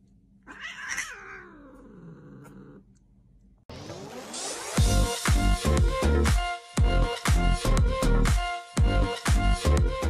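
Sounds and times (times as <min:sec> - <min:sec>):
cat meowing with sliding pitch: 0:00.5 - 0:01.7
music: 0:03.7 - 0:10.0.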